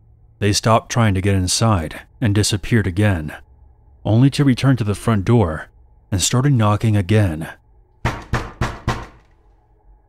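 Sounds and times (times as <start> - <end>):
knocking on a door: 8.0 - 9.3.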